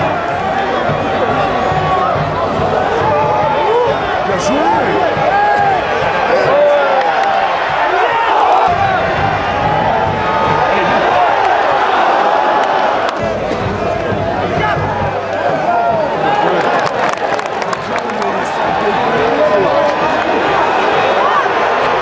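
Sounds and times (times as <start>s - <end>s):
crowd shouting and cheering: 0.0s - 22.0s
hand claps: 12.6s - 13.3s, 16.2s - 18.7s.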